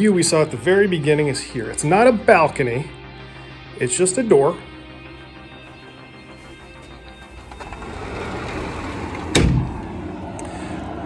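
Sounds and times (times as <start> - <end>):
faint background music: 0.0 - 11.0
glass sliding door sliding open: 6.4 - 10.3
outdoor air noise: 6.5 - 11.0.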